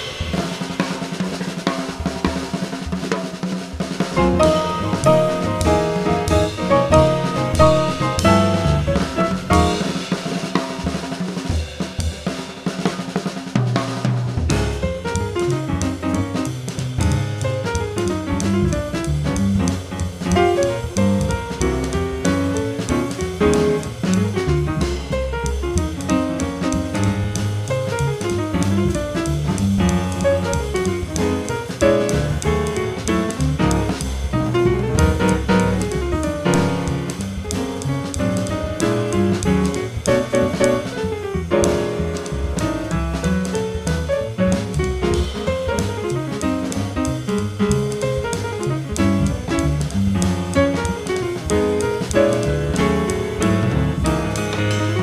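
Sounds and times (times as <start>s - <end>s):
drum kit with cymbals: 0.0s - 55.0s
piano: 0.0s - 55.0s
double bass: 4.0s - 10.3s, 13.8s - 55.0s.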